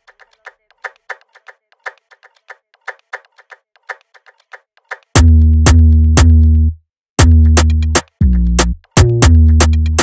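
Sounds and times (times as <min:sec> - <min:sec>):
clicky syncopated percussion hits: 0:00.0 - 0:06.4, 0:07.2 - 0:10.0.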